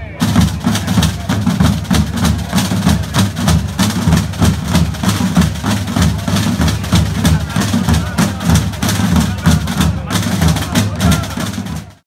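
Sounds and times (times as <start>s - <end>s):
field drums marching rhythm: 0.0s - 12.0s.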